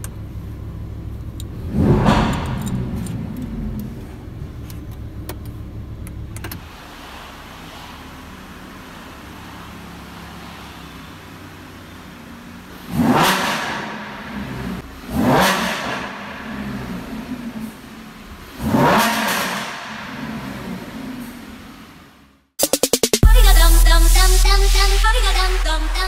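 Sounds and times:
sports car engine revving: 0.0 - 22.3.

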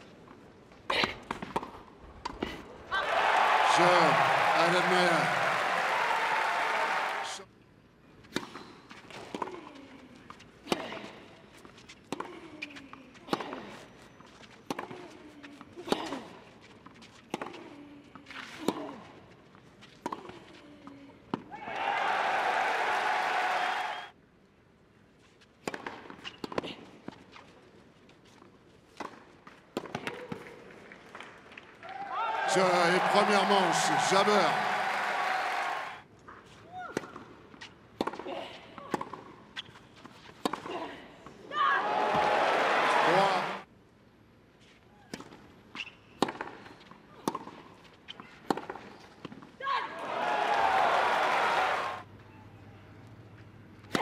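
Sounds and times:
crowd cheering and applauding: 3.0 - 7.4, 21.6 - 24.1, 31.8 - 36.0, 41.8 - 43.6, 50.0 - 52.0
tennis ball hit with racquets: 25.6 - 26.6, 36.9 - 40.8, 45.1 - 49.4.

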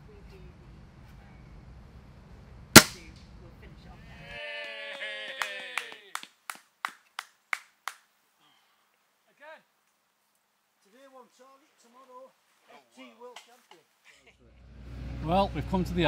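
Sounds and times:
air rifle shot: 2.8 - 3.0
hands clapping: 4.9 - 8.1
people laughing: 13.4 - 14.6.

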